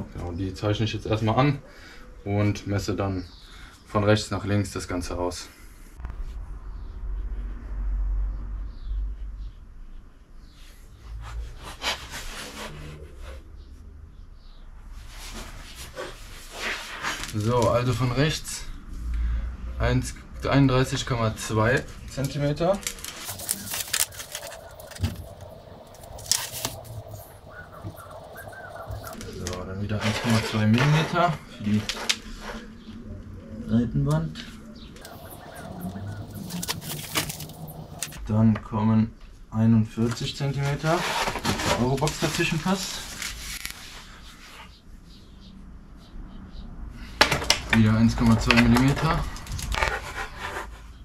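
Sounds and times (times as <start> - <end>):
faint high chirps: 34.5 - 38.2
pencil scratching on board: 49.8 - 50.9.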